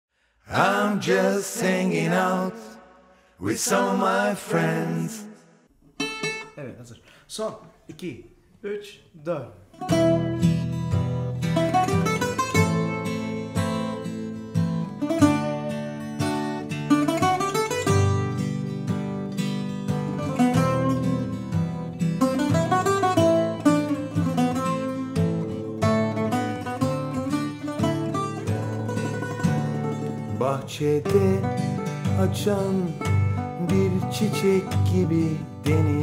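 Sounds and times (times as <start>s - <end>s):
bouzouki and acoustic guitar playing: 6.0s - 6.7s, 9.7s - 36.0s.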